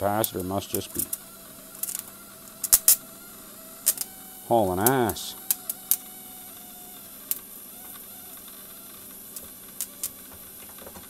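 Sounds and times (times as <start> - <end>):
faint electrical hum: 0.0 - 11.0
spark gap crackling snaps: 0.0 - 11.0.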